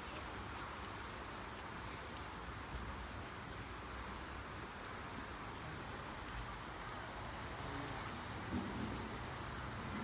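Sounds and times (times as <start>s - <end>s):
flooded river rushing: 0.0s - 10.0s
wind rumble on microphone: 7.6s - 10.0s.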